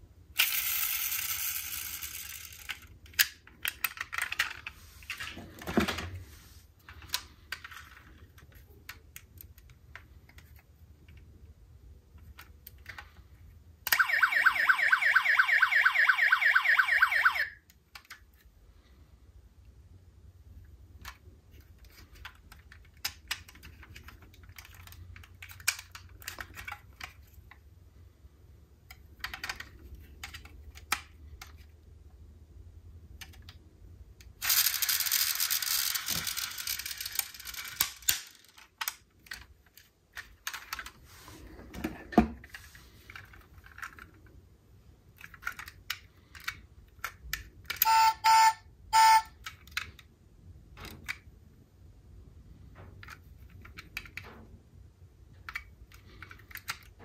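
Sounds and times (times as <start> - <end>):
short pitched beeps: 47.9 - 49.3.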